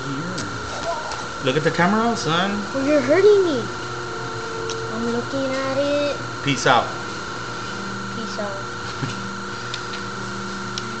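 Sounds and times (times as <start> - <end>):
high-pitched electrical hum: 0.0 - 11.0.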